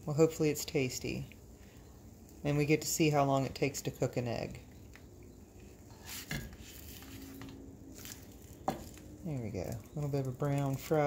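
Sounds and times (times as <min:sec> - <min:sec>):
metal spatula scraping frying pan: 0:05.9 - 0:07.5.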